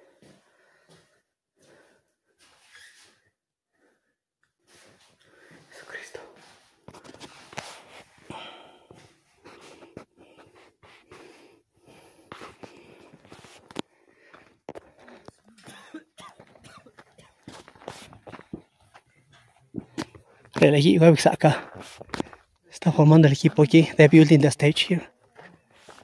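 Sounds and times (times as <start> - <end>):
breathing close to microphone: 0.0 - 2.1, 4.7 - 15.4, 21.5 - 22.6.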